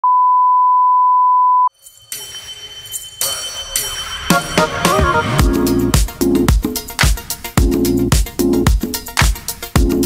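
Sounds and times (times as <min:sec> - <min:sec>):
music: 0:01.7 - 0:10.0.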